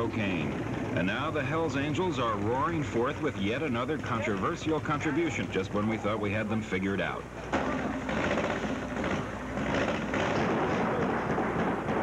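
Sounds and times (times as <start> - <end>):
motorcycle engine running: 0.0 - 6.6, 7.3 - 12.0.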